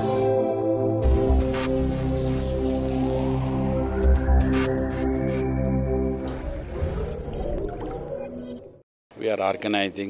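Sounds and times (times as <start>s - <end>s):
sustained synthesizer tones: 0.5s - 8.8s.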